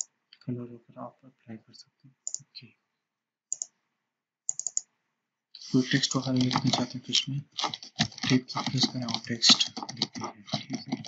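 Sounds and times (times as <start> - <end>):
computer mouse clicks: 3.5 - 3.7, 4.5 - 4.9.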